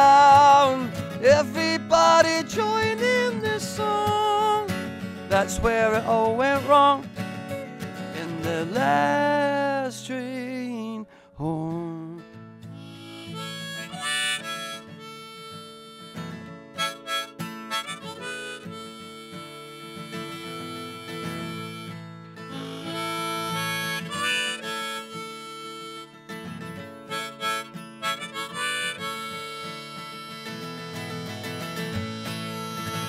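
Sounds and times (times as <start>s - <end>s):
harmonica solo: 0.0s - 9.6s, 12.6s - 33.0s
strummed acoustic guitar: 0.0s - 33.0s.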